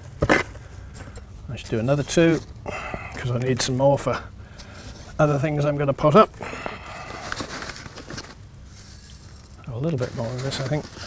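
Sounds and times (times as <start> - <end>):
trowel scooping perlite: 8.7 - 11.0.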